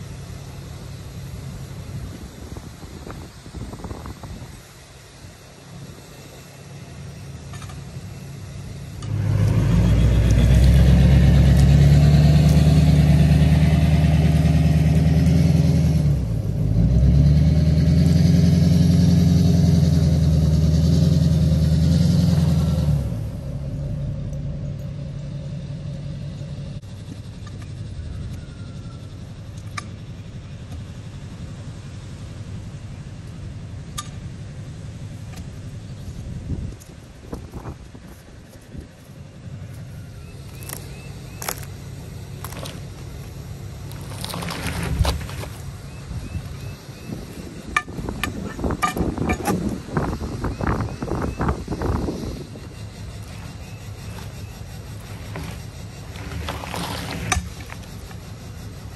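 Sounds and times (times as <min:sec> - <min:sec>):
steady background noise: 0:00.0 - 0:17.0, 0:18.8 - 0:58.9
engine running loudly: 0:00.0 - 0:33.3.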